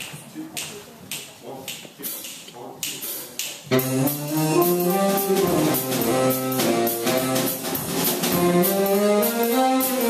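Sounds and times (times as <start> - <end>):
sharp tempo clicks: 0.6 - 10.0
small jazz band playing: 3.0 - 10.0.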